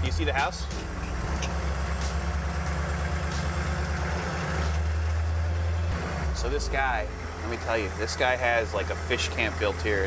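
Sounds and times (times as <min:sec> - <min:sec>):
diesel truck engine running: 0:00.0 - 0:10.0.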